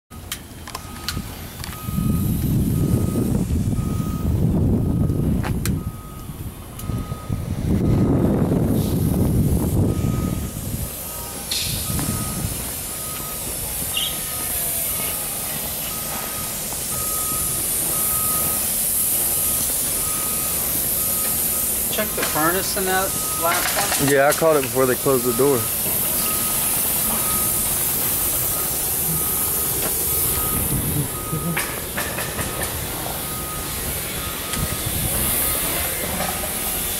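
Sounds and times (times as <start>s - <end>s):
vehicle backup alarm beeping: 0.1s - 36.9s
loud low rumbling: 1.2s - 14.4s, 24.6s - 32.0s
high hiss: 8.7s - 36.9s.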